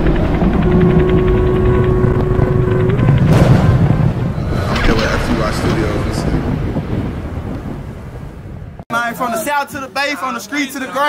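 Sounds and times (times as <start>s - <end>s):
deep noisy rumble: 0.0s - 8.8s.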